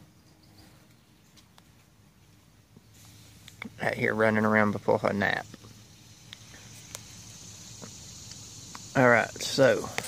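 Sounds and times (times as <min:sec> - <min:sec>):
faint steady high hiss: 0:00.0 - 0:10.0
faint scattered clicks: 0:05.5 - 0:07.1.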